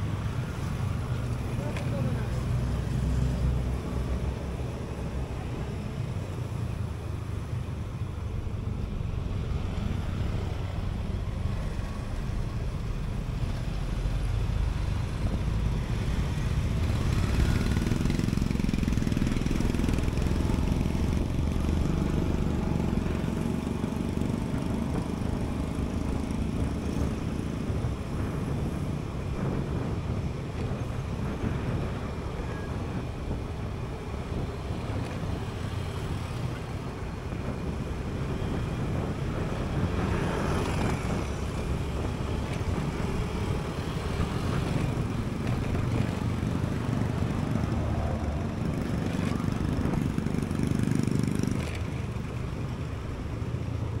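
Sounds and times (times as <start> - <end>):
passing traffic: 0.0 - 54.0
road and wind noise: 0.0 - 54.0.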